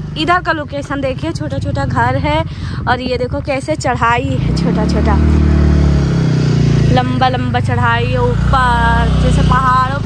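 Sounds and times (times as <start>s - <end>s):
motorcycle engine under load: 0.0s - 10.0s.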